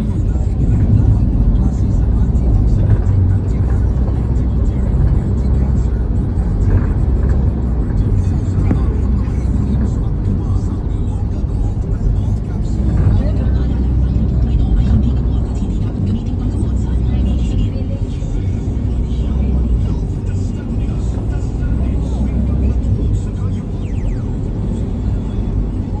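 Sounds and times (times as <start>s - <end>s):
vehicle road and engine rumble: 0.0s - 26.0s.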